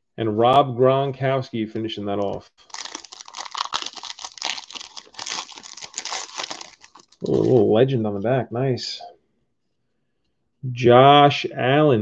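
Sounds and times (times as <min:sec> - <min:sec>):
foil wrapper crinkling and tearing: 0:02.6 - 0:07.6.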